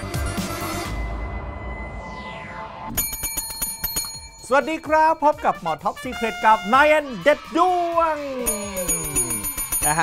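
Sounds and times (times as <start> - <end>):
desk service bell ringing: 3.0 - 5.7, 8.4 - 10.0.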